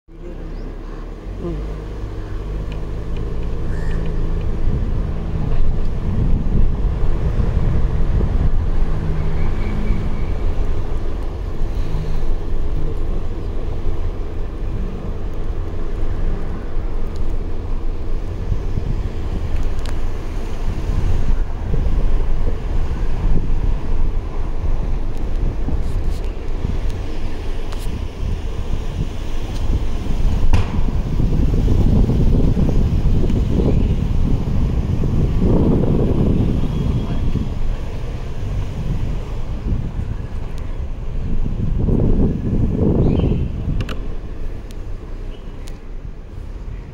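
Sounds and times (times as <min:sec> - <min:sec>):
wind buffeting microphone: 0:00.5 - 0:46.9.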